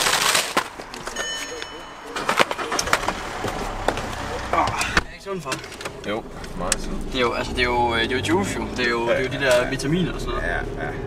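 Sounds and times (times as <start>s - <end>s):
low car engine rumble: 0.0s - 11.0s.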